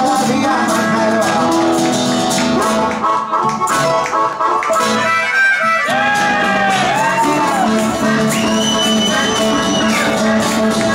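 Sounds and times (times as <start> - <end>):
acoustic guitars playing: 0.0 - 10.9.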